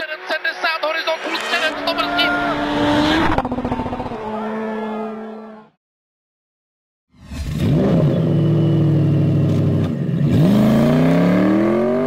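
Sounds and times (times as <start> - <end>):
person speaking: 0.0 - 2.8
car engine passing at high revs: 1.0 - 5.6, 7.4 - 12.0.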